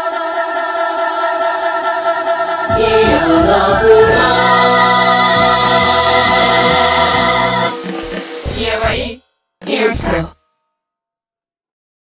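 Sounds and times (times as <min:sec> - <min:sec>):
layered a cappella choir-like singing: 0:00.0 - 0:10.4
lower sliding vocal part: 0:02.6 - 0:10.3.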